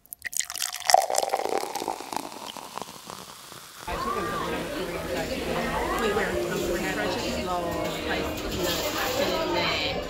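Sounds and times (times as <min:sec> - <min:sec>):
murmur of restaurant voices: 0:00.6 - 0:10.0.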